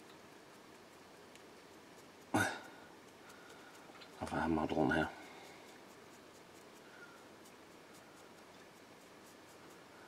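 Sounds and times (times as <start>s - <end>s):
dry paintbrush scratching plastic: 3.0s - 10.0s.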